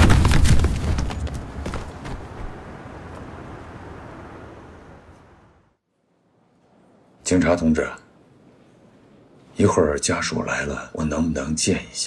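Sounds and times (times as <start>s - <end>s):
rumbling crash: 0.0s - 1.9s.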